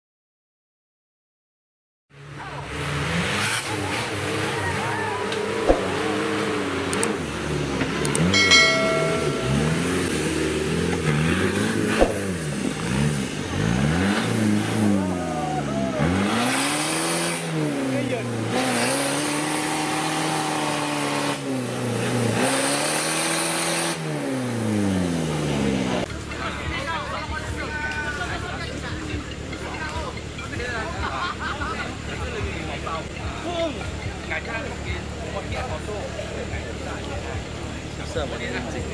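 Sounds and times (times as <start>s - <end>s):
diesel engine revving hard: 2.2s - 26.1s.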